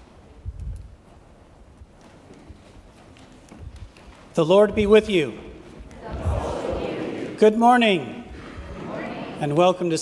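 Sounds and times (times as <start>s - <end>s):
faint low thumps: 4.7s - 7.0s.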